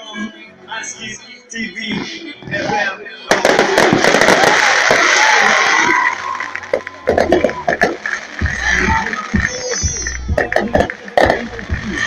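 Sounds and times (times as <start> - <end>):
music playing: 0.0 - 12.0
fireworks crackling and booming: 1.8 - 12.0.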